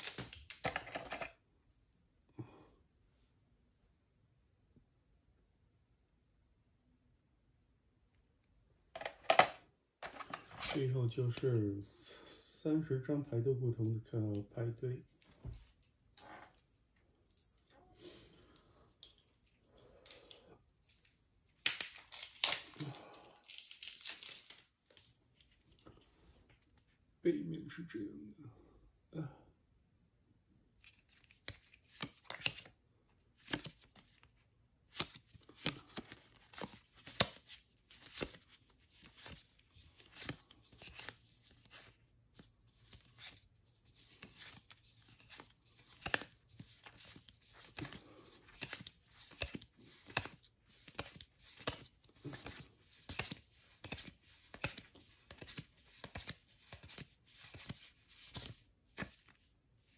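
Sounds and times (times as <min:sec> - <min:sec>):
cards clicking and snapping: 0:00.0 - 0:01.3, 0:21.5 - 0:25.0, 0:30.8 - 0:32.8, 0:33.4 - 0:34.3, 0:34.9 - 0:59.5.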